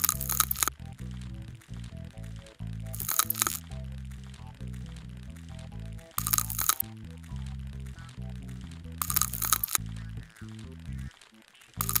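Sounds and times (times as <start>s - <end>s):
background music: 0.0s - 12.0s
scraping crackling sound effect: 0.0s - 12.0s.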